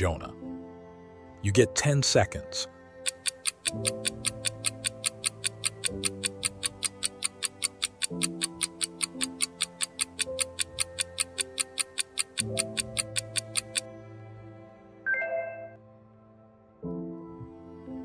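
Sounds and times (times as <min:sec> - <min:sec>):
soft background music: 0:00.0 - 0:18.0
clock-like ticking: 0:03.0 - 0:13.9.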